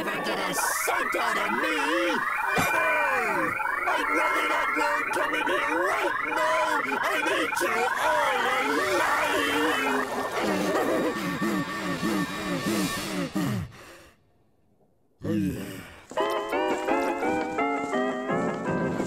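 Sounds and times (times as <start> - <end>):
cartoon voices wavering cries: 0.0 - 13.4.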